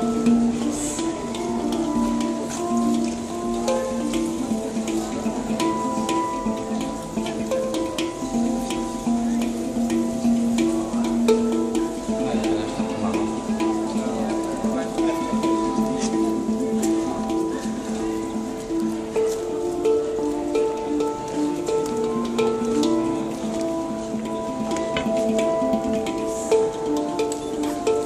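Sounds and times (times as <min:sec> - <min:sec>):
handpan melody: 0:00.0 - 0:28.0.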